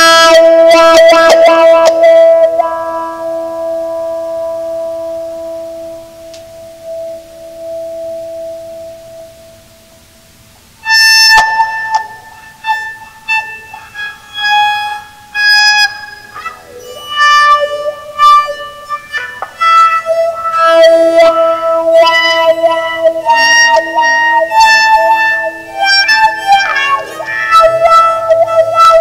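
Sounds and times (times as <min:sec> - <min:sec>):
bowed electric guitar notes: 0:00.0 - 0:29.0
bow scraping guitar string: 0:10.8 - 0:29.0.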